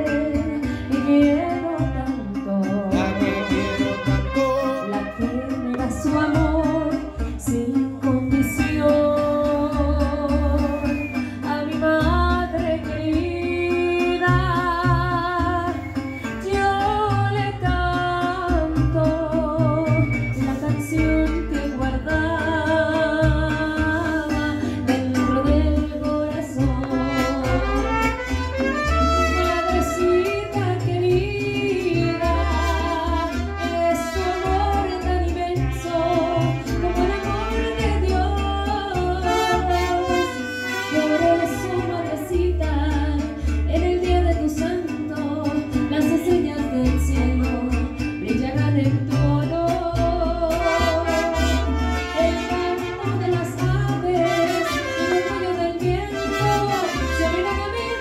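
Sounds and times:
mariachi band playing: 0.0s - 58.0s
strummed guitars: 0.0s - 58.0s
deep bass notes: 1.8s - 7.8s, 21.6s - 28.6s
violins playing melody: 3.0s - 6.5s.

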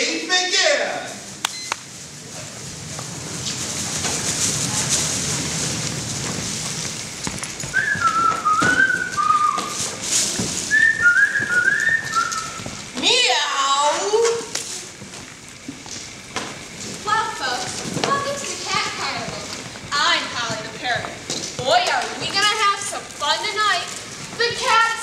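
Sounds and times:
hall background noise: 0.0s - 25.0s
person whistling a tune: 7.7s - 9.8s, 10.7s - 12.6s.

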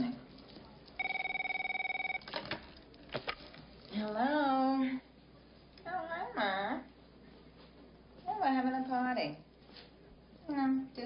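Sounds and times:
telephone ringing electronic warble: 1.0s - 2.3s.

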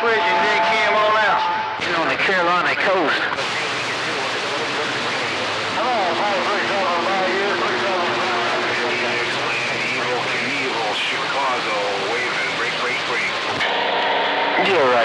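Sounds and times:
garbled radio voices: 0.0s - 13.8s
radio static and hiss: 1.8s - 15.0s
steady buzzing tone: 3.4s - 15.0s.

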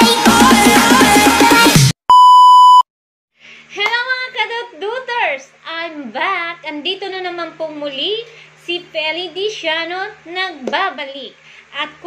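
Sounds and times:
electronic test tone beep: 2.1s - 2.8s.

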